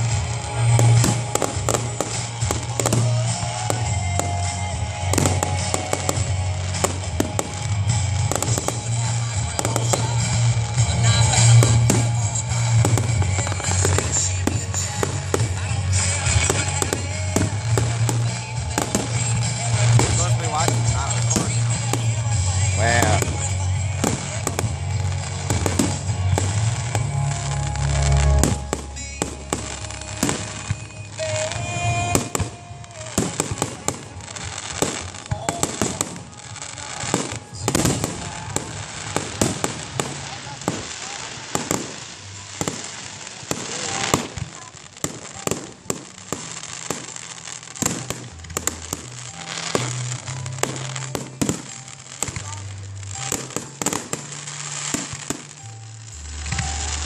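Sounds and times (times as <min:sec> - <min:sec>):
firework bangs: 0:00.0 - 0:57.0
firework crackling: 0:00.0 - 0:57.0.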